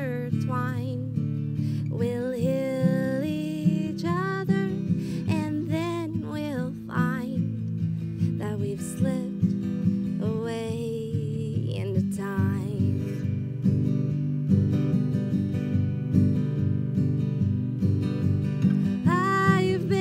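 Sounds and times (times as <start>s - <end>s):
woman singing: 0.0s - 13.4s, 19.0s - 20.0s
acoustic guitar: 0.0s - 20.0s.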